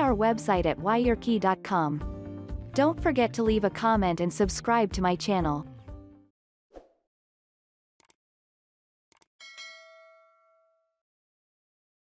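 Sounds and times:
notification bell ding: 9.4s - 10.9s.

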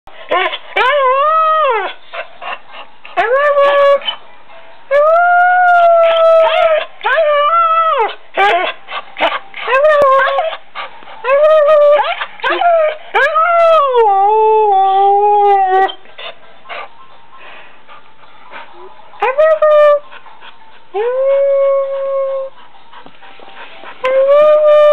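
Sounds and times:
dog howling: 20.9s - 22.6s.

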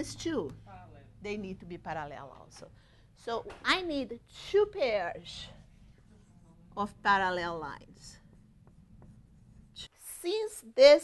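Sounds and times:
marker writing on whiteboard: 7.6s - 9.9s.

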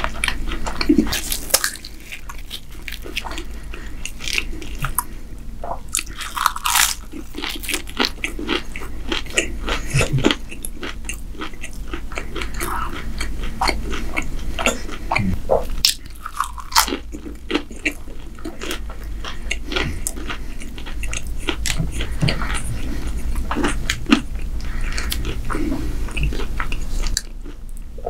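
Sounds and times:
crunchy pastry chewing: 0.0s - 5.1s, 5.9s - 27.9s
mouth sounds: 9.8s - 10.4s, 14.6s - 15.7s.

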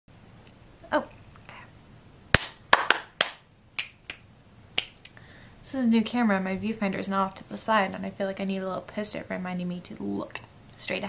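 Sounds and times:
fingers snapping: 3.8s - 4.2s, 4.8s - 5.2s.

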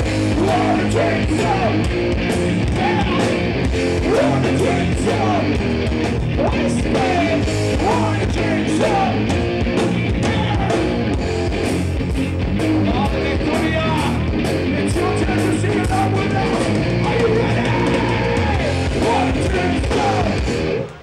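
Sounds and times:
live metal band playing: 0.0s - 21.0s.

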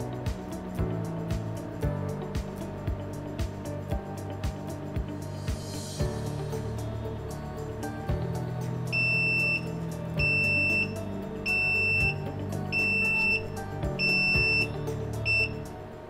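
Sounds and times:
background music: 0.0s - 16.0s
alarm buzzer beeping: 8.9s - 15.6s.

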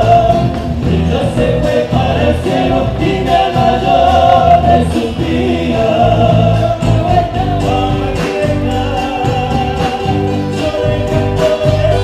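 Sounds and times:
drums: 0.0s - 12.0s
strummed acoustic guitars: 0.0s - 12.0s
voices singing together: 0.0s - 12.0s.

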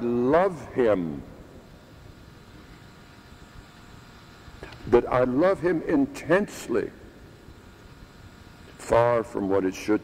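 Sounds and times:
faint steady tones: 0.0s - 10.0s.

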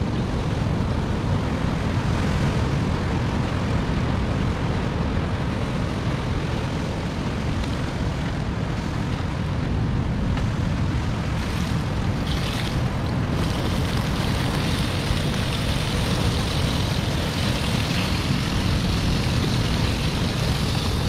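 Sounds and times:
wind rumbling on microphone: 0.0s - 21.0s
surf breaking on rocks: 10.2s - 21.0s.

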